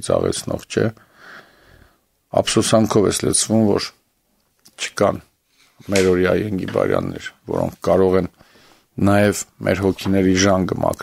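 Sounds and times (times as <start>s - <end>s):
man speaking: 0.0s - 1.0s, 2.3s - 4.0s, 4.7s - 8.4s, 9.0s - 11.0s
man breathing in: 1.0s - 2.1s, 8.4s - 9.0s.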